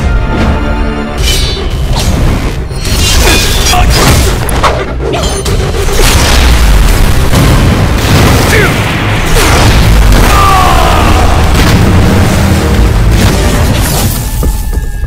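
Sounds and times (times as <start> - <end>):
heavy booms and explosions: 0.0 - 15.0
trailer music: 0.0 - 15.0.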